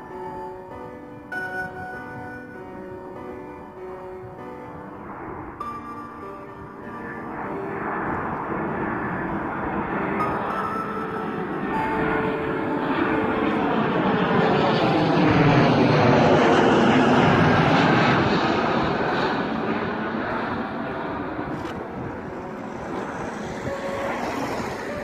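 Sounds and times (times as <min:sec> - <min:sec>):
jet engine roar overhead: 0:00.0 - 0:25.0.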